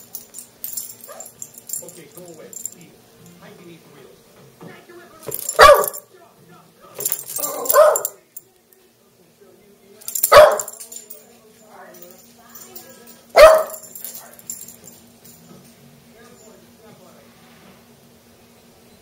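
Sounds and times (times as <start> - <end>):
small dog barking: 5.4 - 6.0, 7.4 - 8.2, 10.3 - 10.8, 13.3 - 13.8.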